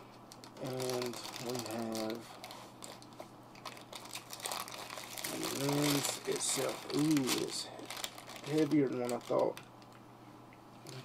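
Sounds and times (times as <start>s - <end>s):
plastic bag crinkling: 0.3s - 9.7s.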